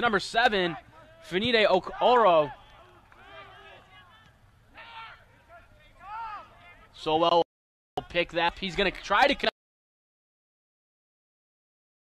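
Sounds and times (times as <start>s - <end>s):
stadium ambience: 0.0s - 7.4s, 8.0s - 9.5s
distant players shouting: 0.1s - 7.0s.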